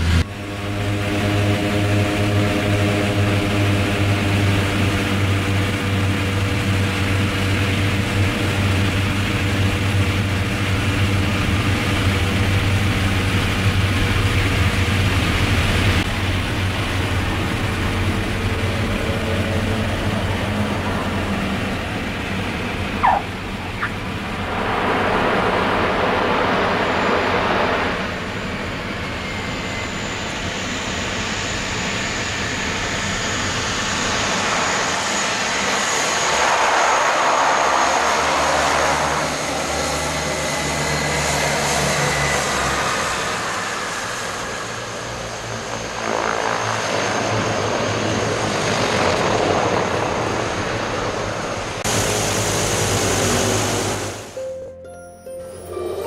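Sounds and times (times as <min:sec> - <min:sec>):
turboprop engines running: 0:00.0 - 0:54.5.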